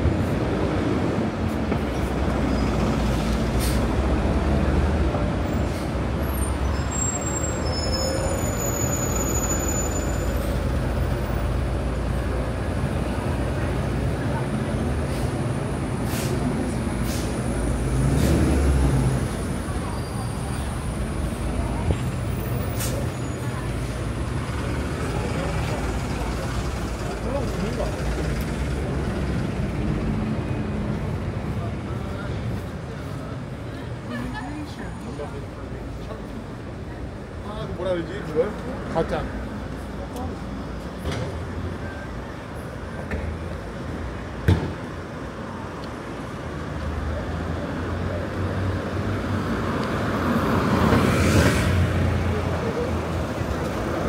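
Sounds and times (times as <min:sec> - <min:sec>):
buses and street traffic: 0:00.0 - 0:54.0.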